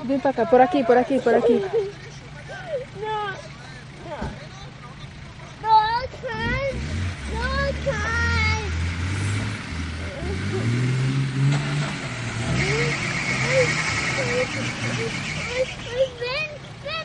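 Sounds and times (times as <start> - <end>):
people's voices: 0.0 - 8.9, 9.7 - 17.0
suv engine revving under load: 5.2 - 17.0.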